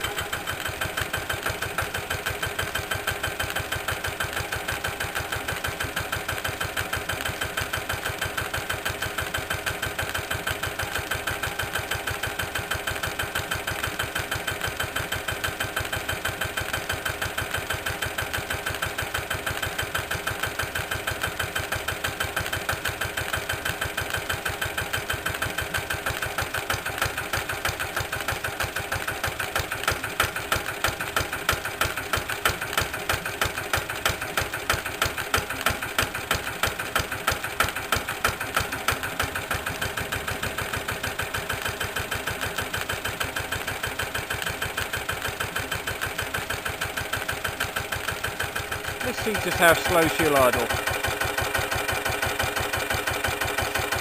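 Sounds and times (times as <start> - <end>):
diesel engine running slowly: 0.0 - 54.0.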